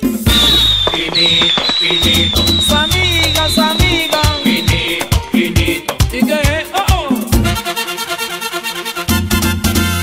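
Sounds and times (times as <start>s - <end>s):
fireworks crackling: 0.0s - 5.8s
merengue dance music: 0.0s - 10.0s
steady high whistle: 0.3s - 5.4s.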